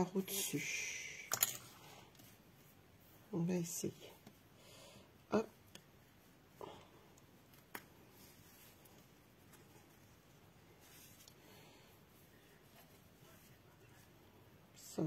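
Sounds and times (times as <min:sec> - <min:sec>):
faint handling noise: 0:05.6 - 0:14.4.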